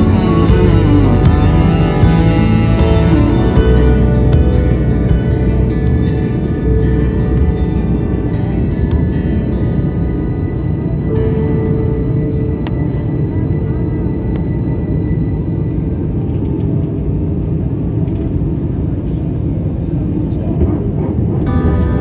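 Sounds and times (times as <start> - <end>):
airliner engine rumble in cabin: 0.0 - 22.0.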